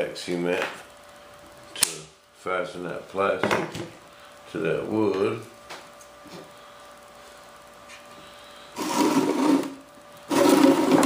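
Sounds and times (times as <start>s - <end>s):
box scraping across workbench: 8.8s - 11.0s.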